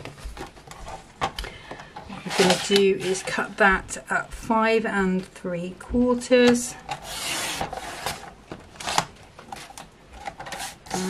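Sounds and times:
paper rustling: 0.0s - 3.5s.

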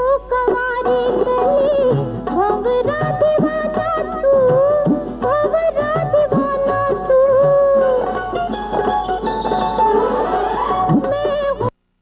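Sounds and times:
held instrumental accompaniment: 0.4s - 11.7s
plucked string instrument melody: 0.8s - 11.7s.

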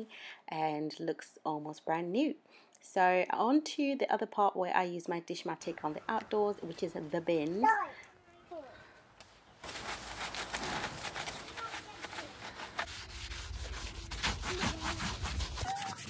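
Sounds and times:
brush scrubbing plastic bin: 9.6s - 16.0s.

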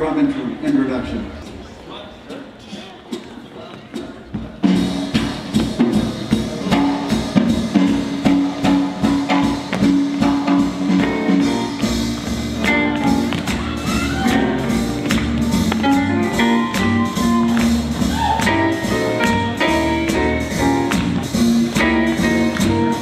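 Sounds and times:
drum strikes: 3.9s - 23.0s
live blues band playing: 4.4s - 23.0s.

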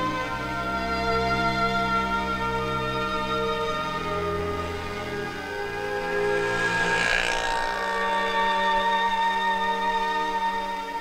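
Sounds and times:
auto-rickshaw engine passing: 0.0s - 11.0s
soft background music: 0.0s - 11.0s.

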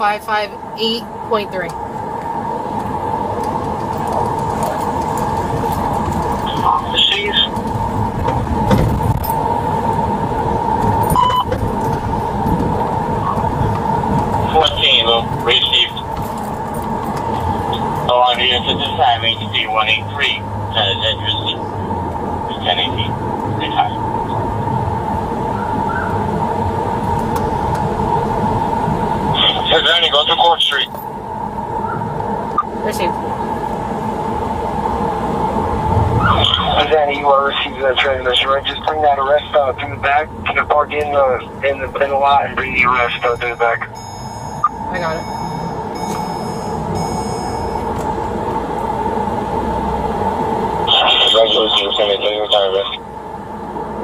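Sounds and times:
car engine and road rumble: 0.0s - 54.0s
muffled indistinct speech: 6.3s - 7.6s, 14.4s - 16.1s, 17.7s - 21.8s, 22.5s - 24.0s, 29.4s - 30.9s, 36.3s - 43.9s, 50.9s - 53.0s.

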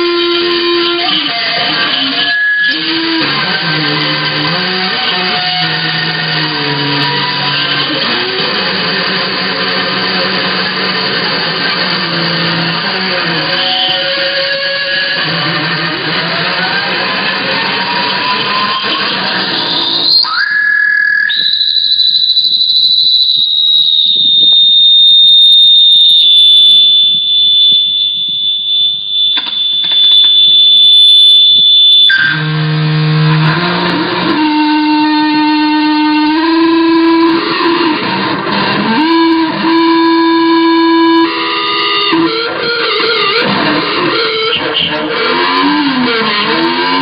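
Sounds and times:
distorted slide guitar: 0.0s - 47.0s
high-pitched feedback squeal: 0.0s - 47.0s.

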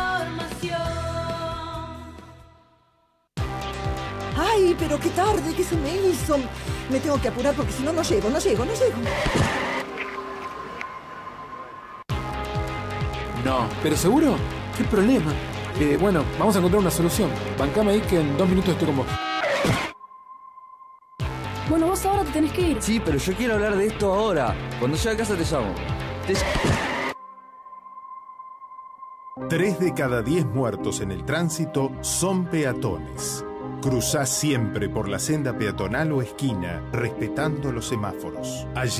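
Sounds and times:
music: 0.0s - 19.2s, 21.2s - 38.9s
speech: 29.4s - 38.9s.

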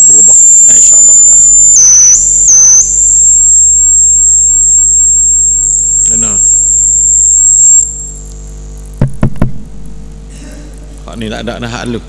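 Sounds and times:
electrical mains hum: 0.0s - 12.0s
high-pitched whine: 0.0s - 12.0s.

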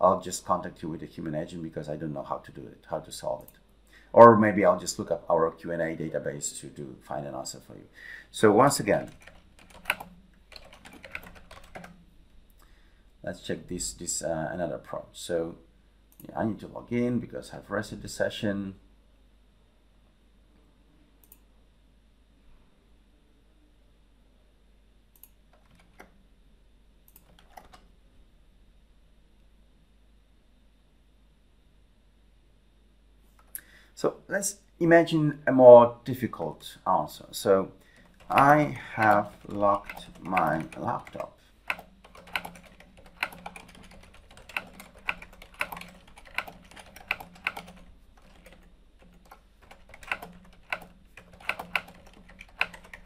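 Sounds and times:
typing on computer keyboard: 8.9s - 12.0s, 25.5s - 26.1s, 27.1s - 27.9s, 38.0s - 53.0s.

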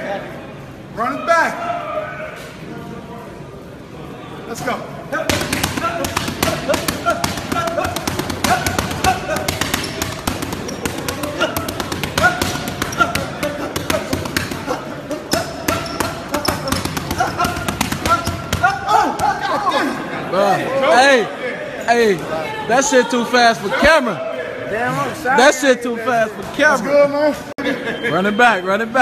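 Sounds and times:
voices: 0.0s - 29.0s
boxing gloves slapping focus mitts: 5.3s - 19.4s.

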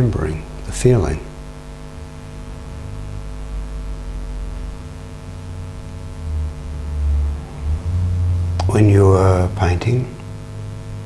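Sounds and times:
man speaking softly: 0.0s - 1.3s, 8.6s - 10.3s
electrical mains hum: 0.0s - 11.0s.

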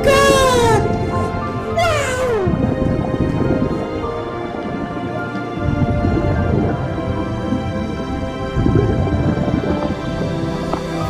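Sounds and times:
pitched cry sliding downward: 0.0s - 2.7s
background music with held notes: 0.0s - 11.0s.

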